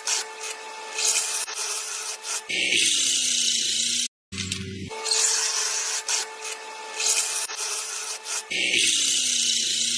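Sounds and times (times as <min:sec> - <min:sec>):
drill cutting wood: 0:00.0 - 0:09.9.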